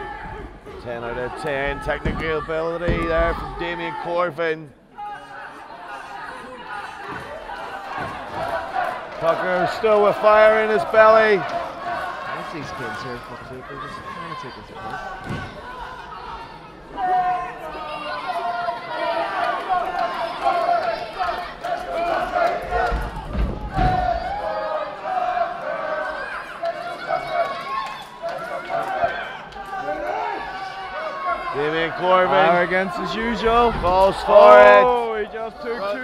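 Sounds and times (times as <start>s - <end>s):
crowd shouting: 0.0s - 36.0s.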